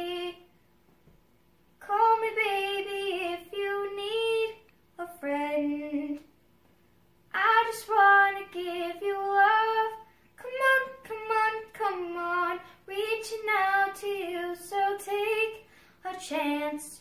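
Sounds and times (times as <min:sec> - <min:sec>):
girl singing unaccompanied: 0:00.0 - 0:00.5, 0:01.8 - 0:06.4, 0:07.3 - 0:17.0.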